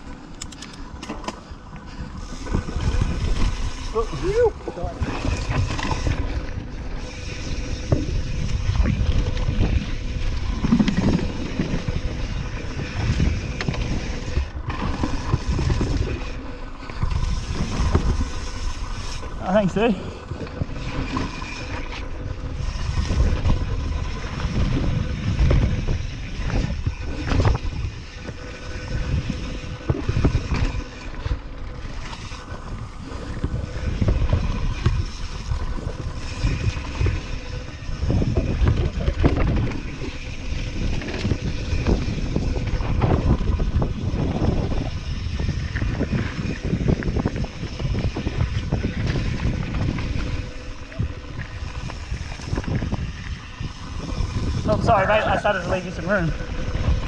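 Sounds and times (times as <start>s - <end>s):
bike knocking and rattling: 0.0s - 57.0s
bike tyres rumbling over dirt: 0.0s - 57.0s
wind buffeting microphone: 0.0s - 57.0s.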